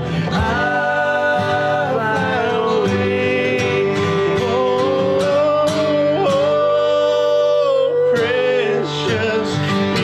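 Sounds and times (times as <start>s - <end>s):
acoustic guitars strummed: 0.0s - 10.0s
male voices singing: 0.0s - 10.0s.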